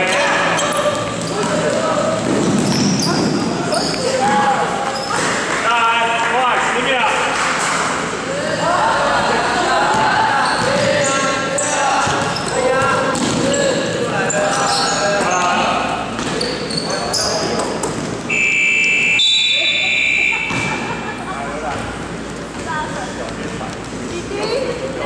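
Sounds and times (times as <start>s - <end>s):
sneaker squeaks on wooden floor: 0.6s - 5.4s, 12.0s - 15.6s, 16.2s - 19.4s
basketball dribbling: 12.0s - 13.5s
scoreboard buzzer: 18.3s - 20.7s.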